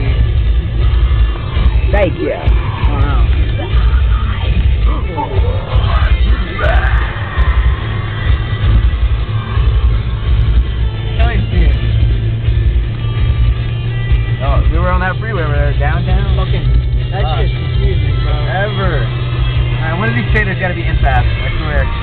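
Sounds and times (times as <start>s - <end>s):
music playing in car: 0.0s - 22.0s
road and engine rumble: 0.0s - 22.0s.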